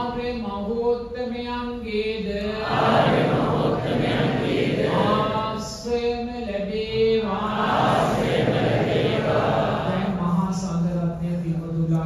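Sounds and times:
many voices chanting together: 2.3s - 5.8s, 6.8s - 10.6s.

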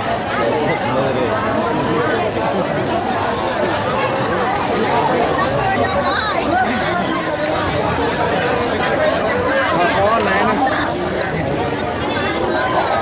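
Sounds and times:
crowd babble: 0.0s - 13.0s.

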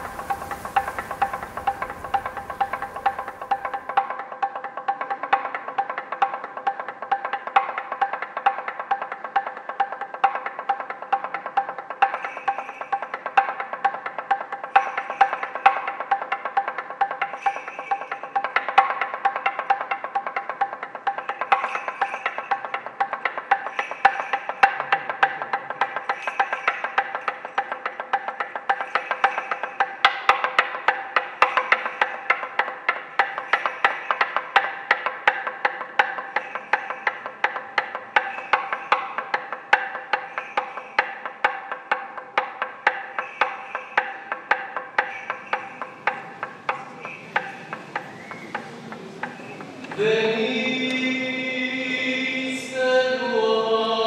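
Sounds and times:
steady ringing tones: 0.0s - 4.0s, 44.7s - 53.8s
rhythmic knocking on wood: 18.3s - 52.1s.

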